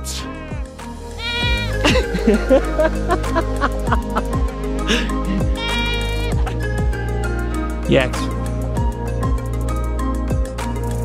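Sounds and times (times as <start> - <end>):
background music with steady beat: 0.0 - 11.0
goat bleating: 1.2 - 1.9, 5.3 - 6.5.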